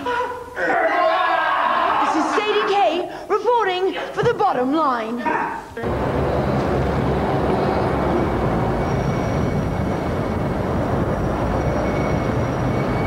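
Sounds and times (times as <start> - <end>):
faint high whine: 5.8 - 13.0
traffic rumble: 5.8 - 13.0.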